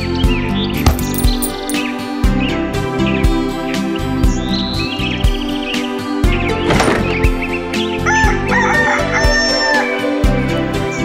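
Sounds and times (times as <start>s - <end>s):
background music with steady beat: 0.0s - 11.0s
rooster crowing: 8.0s - 10.0s.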